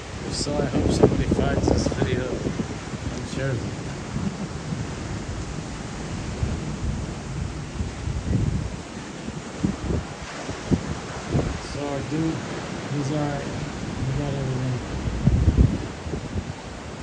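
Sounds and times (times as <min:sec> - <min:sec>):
gusty wind buffeting microphone: 0:00.0 - 0:17.0.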